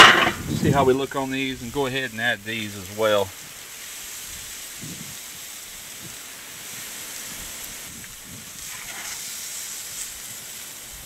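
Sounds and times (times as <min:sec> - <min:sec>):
steaks sizzling on grill: 0:00.0 - 0:11.0.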